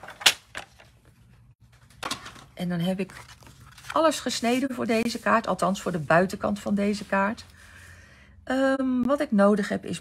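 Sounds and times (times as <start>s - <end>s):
paper rustling: 0.0s - 6.0s.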